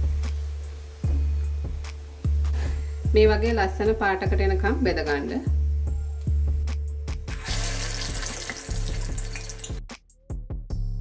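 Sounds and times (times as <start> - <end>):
oil sizzling and bubbling: 0.0 - 3.1, 7.1 - 9.9
background music with steady beat: 0.0 - 11.0.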